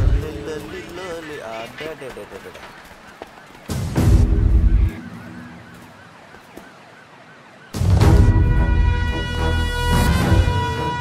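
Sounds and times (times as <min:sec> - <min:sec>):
film music with heavy bass: 0:00.0 - 0:00.6, 0:03.7 - 0:05.6, 0:07.8 - 0:11.0
siren warbling: 0:04.0 - 0:08.2.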